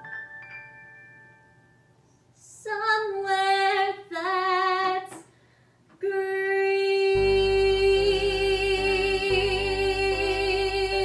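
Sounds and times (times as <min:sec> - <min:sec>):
woman singing: 0:02.4 - 0:05.3, 0:06.0 - 0:11.0
breath: 0:05.3 - 0:05.9.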